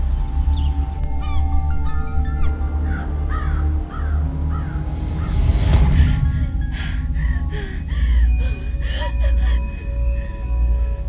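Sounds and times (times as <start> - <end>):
birds chirping: 0.0 - 11.0
soft background music: 0.0 - 11.0
steady low rumble: 0.0 - 11.0.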